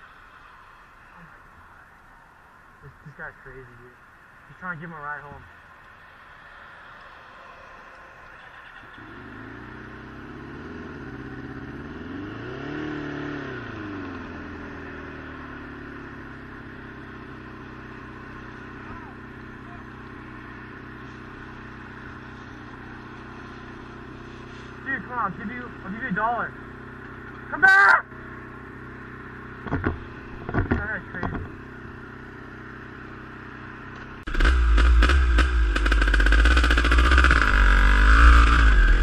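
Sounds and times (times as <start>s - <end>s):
road and wind noise: 0.0s - 39.0s
motorcycle engine revving: 8.4s - 39.0s.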